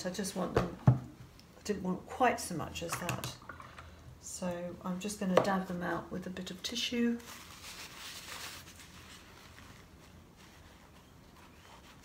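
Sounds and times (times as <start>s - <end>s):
paper tissue rustling: 7.0s - 12.0s.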